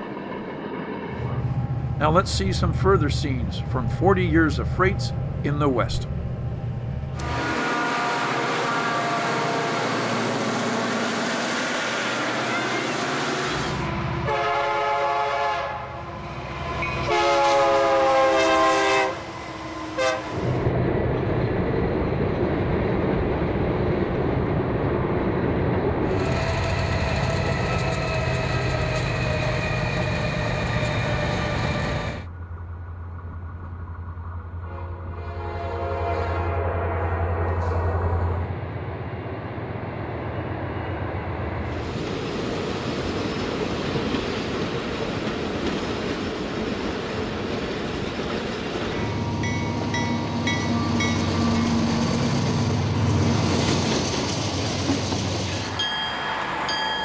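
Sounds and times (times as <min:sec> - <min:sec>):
freight trains passing: 0:00.0 - 0:57.0
air horn blasts: 0:07.2 - 0:10.0, 0:14.2 - 0:16.0, 0:17.0 - 0:19.3, 0:20.0 - 0:20.4, 0:34.6 - 0:37.8.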